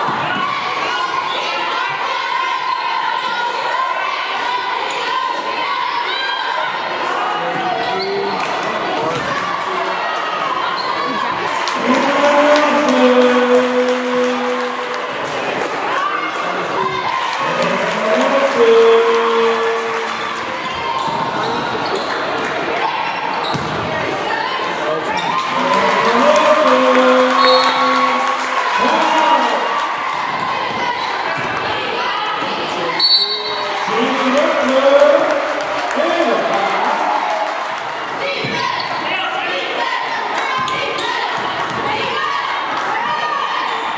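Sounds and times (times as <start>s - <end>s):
gym crowd noise: 0.0s - 43.9s.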